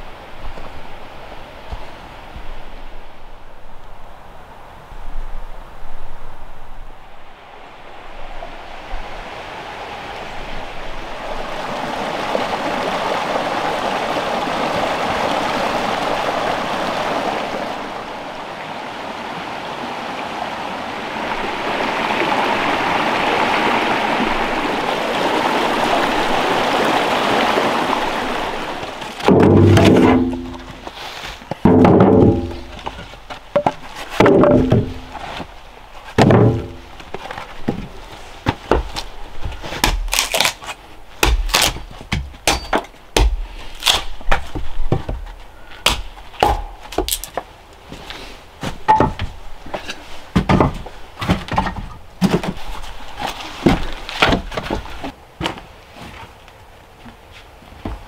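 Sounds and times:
creek water rushing over rocks: 7.1 - 55.2
hatchet splitting kindling on wood: 39.7 - 47.4.

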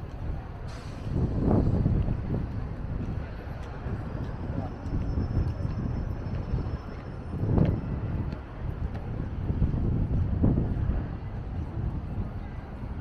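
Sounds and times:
low rumbling wind on microphone: 0.0 - 13.0.

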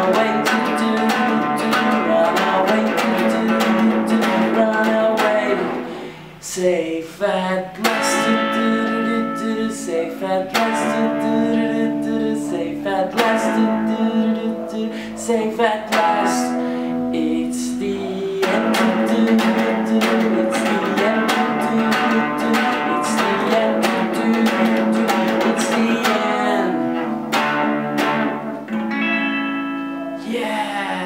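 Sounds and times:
electric guitar strumming chords: 0.0 - 6.4, 7.8 - 31.0.

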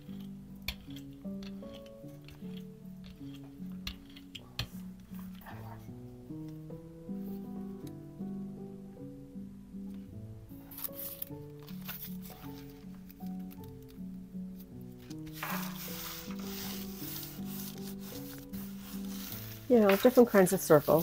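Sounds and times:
background music: 0.0 - 21.0
hands rubbing tissue paper: 15.2 - 21.0.

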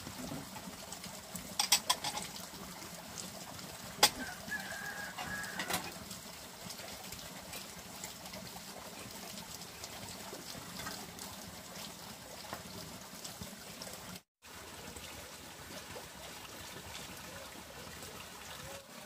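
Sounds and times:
water splashing from bamboo spout: 0.0 - 19.0.

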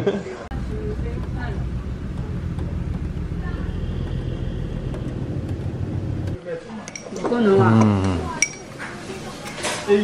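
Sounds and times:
low engine drone: 0.5 - 6.4.

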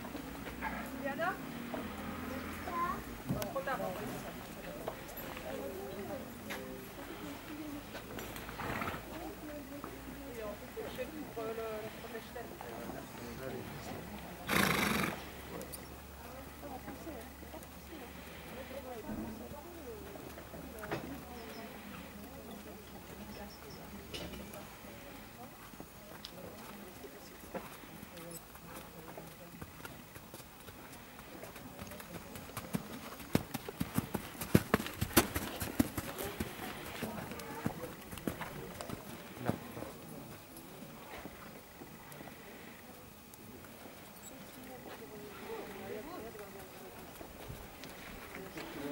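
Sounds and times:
horse snorting: 8.4 - 9.3, 14.4 - 15.6
horse hoofbeats on sand: 26.5 - 39.8.

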